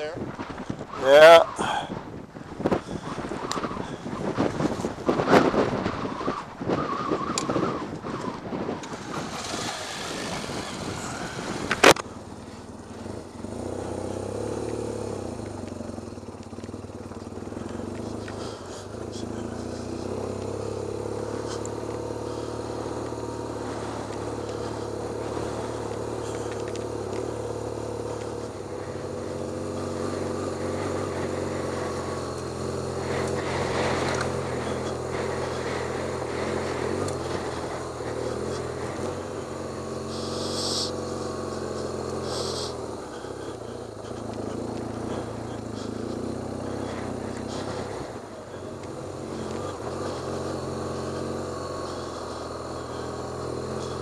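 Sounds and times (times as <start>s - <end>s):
motorcycle engine running: 0.0s - 54.0s
road and wind noise: 0.0s - 54.0s.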